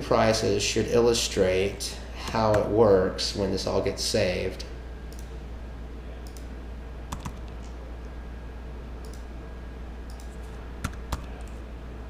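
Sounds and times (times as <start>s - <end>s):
steady low hum: 0.0s - 12.0s
computer mouse clicks: 6.2s - 6.5s, 7.1s - 7.7s, 9.0s - 9.3s, 10.1s - 11.6s
keystrokes: 7.1s - 7.6s, 9.0s - 9.3s, 10.1s - 11.6s.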